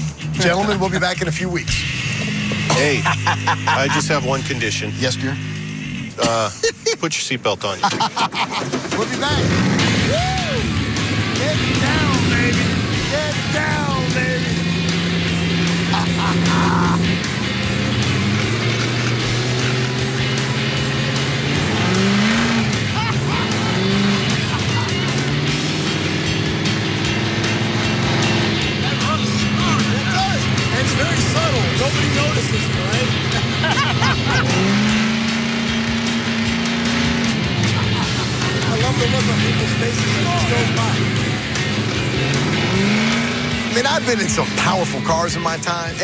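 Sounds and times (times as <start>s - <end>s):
background music: 0.0s - 46.0s
hot rod engines running: 0.0s - 46.0s.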